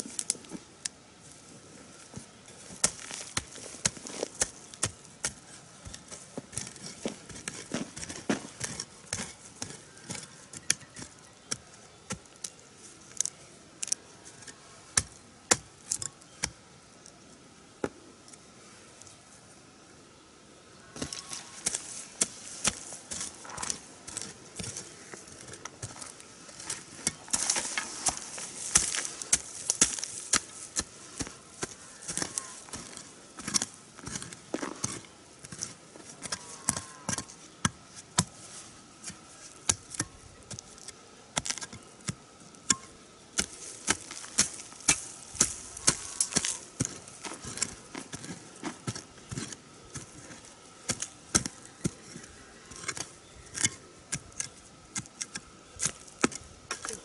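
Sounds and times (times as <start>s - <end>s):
hoe chopping and scraping soil: 2.0s - 16.7s, 21.0s - 57.0s.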